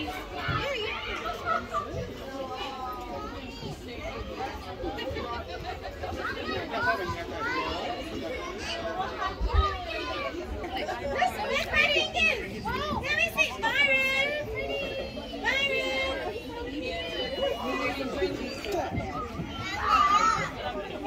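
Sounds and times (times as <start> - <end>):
children and adults chattering: 0.0 - 21.0
children calling out: 11.1 - 21.0.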